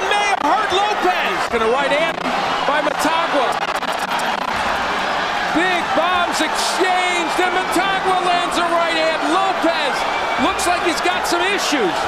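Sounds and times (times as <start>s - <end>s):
man commentating: 0.0s - 3.6s, 5.5s - 12.0s
crowd roaring: 0.0s - 12.0s.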